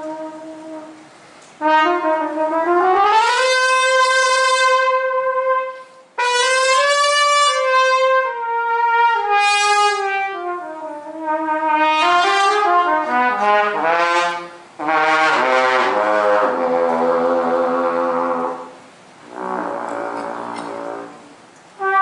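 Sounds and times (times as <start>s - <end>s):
solo trumpet: 0.0s - 22.0s.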